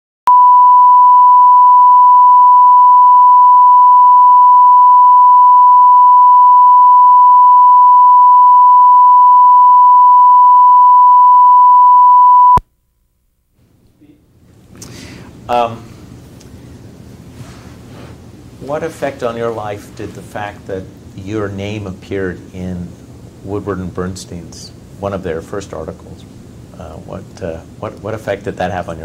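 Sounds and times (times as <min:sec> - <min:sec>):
steady reference tone: 0:00.3 - 0:12.6.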